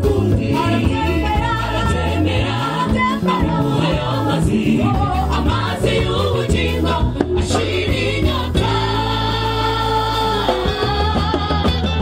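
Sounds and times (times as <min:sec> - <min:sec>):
choir singing gospel song: 0:00.0 - 0:12.0.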